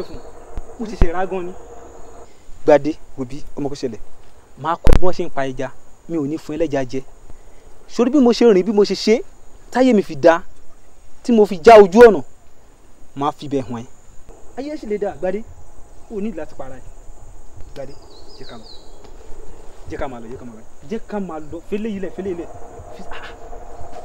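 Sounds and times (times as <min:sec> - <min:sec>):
insects calling: 0:00.0 - 0:24.0
man speaking: 0:00.8 - 0:01.6, 0:19.9 - 0:23.4.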